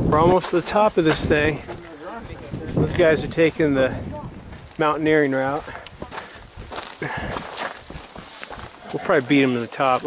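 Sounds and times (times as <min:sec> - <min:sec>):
footsteps on rock and grit: 0:04.5 - 0:10.0
shoes clicking on rock: 0:04.5 - 0:10.0.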